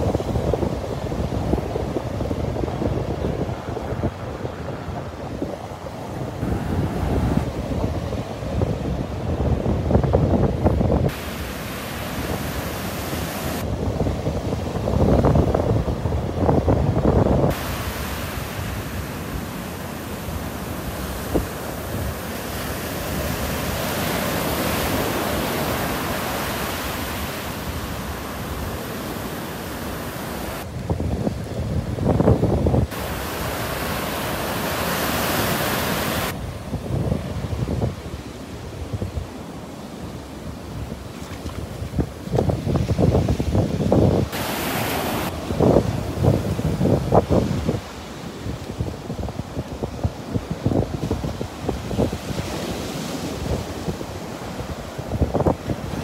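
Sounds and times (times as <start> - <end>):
surf breaking on sand: 0.0 - 39.3, 40.4 - 56.0
wind buffeting microphone: 0.0 - 39.6, 40.4 - 56.0.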